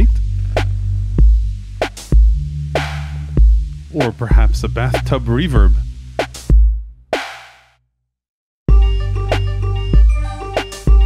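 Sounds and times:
sustained low bass tone: 0.0 - 6.2
electronic music: 0.0 - 6.5, 8.7 - 11.0
deep kick drum thumps: 1.2 - 1.5, 2.1 - 2.5, 3.4 - 7.0.

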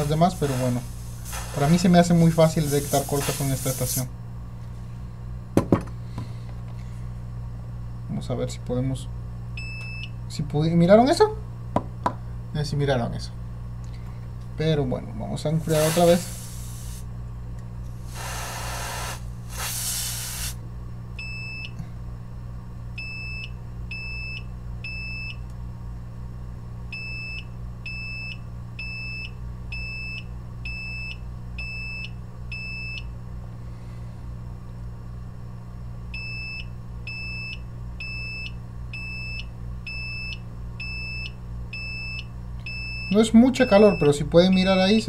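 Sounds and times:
freeze spray hisses: 0.0 - 4.1, 15.6 - 17.1, 18.0 - 20.6
steady low hum: 0.0 - 45.0.

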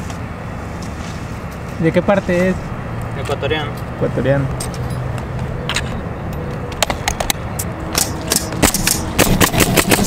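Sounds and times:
nail gun firing: 8.0 - 10.0.

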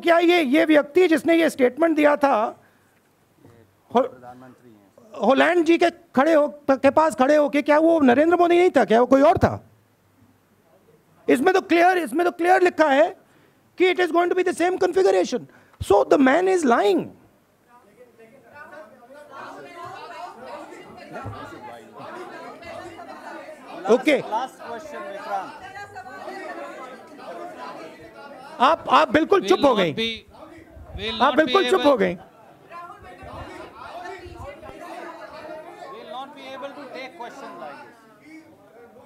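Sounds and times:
chatter of voices: 18.1 - 39.0.

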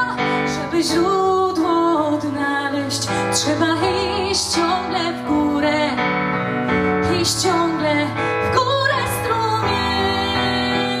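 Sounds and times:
woman singing slow song: 0.0 - 6.2, 7.0 - 11.0.

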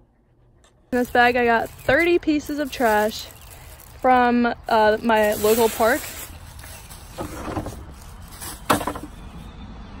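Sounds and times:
plastic bag rustling: 1.0 - 9.4.

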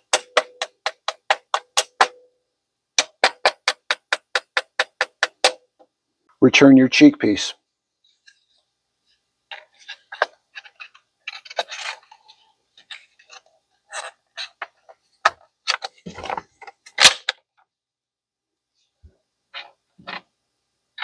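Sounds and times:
sharp knocks: 3.0 - 5.7
shotgun parts clicking and scraping: 9.5 - 17.4.

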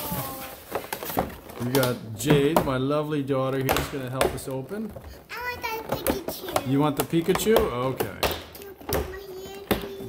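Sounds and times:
plastic tray tapping and knocking: 0.7 - 10.0.

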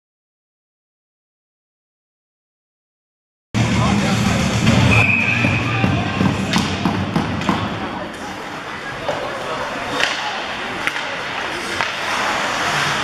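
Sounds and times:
crowd noise and voices: 3.6 - 13.0
hockey sticks and puck clacking: 4.9 - 13.0.

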